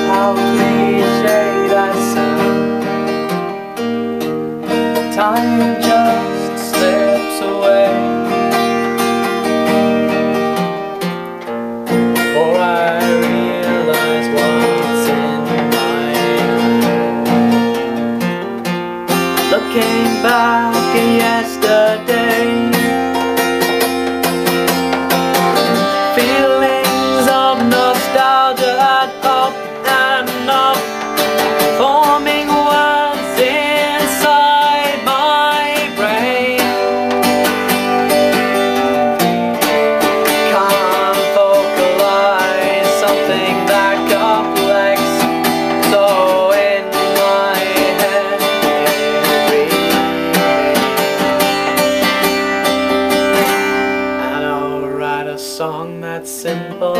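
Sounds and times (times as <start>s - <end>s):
strummed acoustic guitar: 0.0s - 56.9s.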